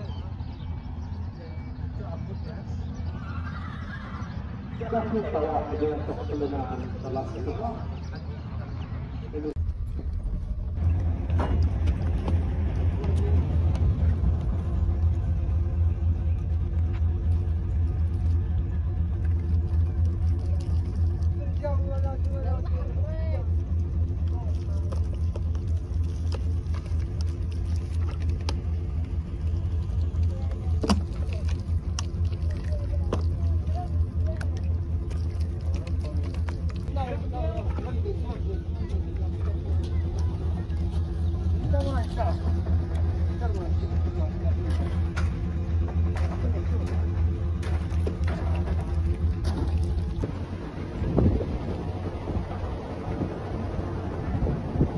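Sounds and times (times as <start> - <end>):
voices: 0.0 - 9.6, 10.7 - 54.9
vehicle engine rumble: 0.0 - 54.9.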